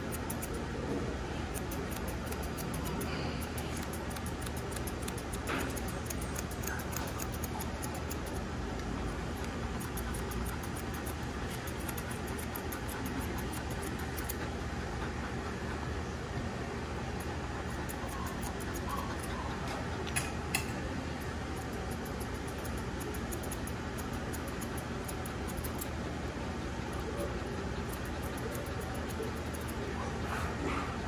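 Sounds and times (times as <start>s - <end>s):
grooming shears snipping hair: 0.0s - 31.0s
steady background hum: 0.0s - 31.0s.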